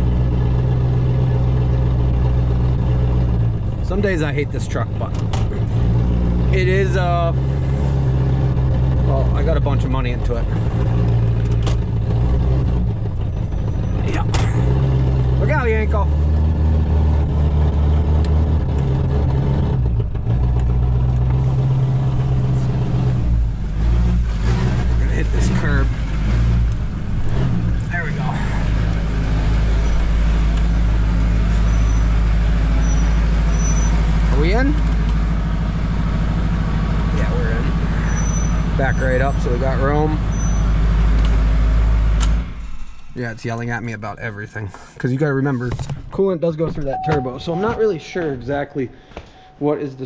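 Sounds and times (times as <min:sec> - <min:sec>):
diesel engine running: 0:00.0 - 0:45.7, 0:46.8 - 0:50.0.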